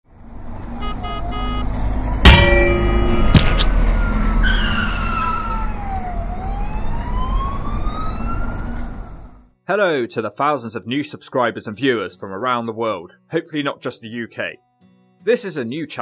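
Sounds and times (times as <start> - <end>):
emergency siren wailing: 0.8 - 1.7, 3.1 - 9.4
sharp loud knocks: 2.3 - 3.7.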